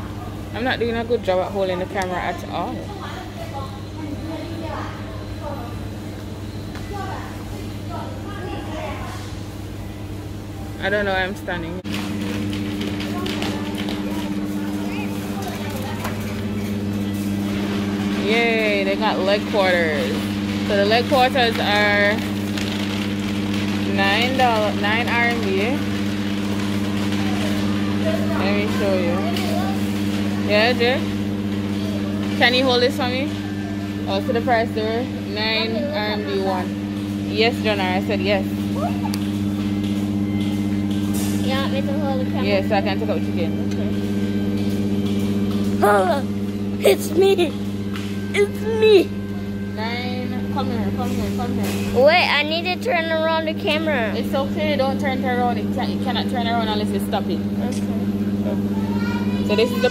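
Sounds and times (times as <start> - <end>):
faint chatter of shoppers: 0.0 - 22.9, 23.9 - 36.7
steady low hum: 0.0 - 59.9.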